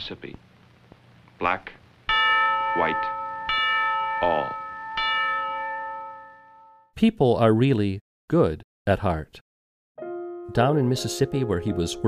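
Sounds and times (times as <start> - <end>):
bell-like chime note: 2.1 - 6.9.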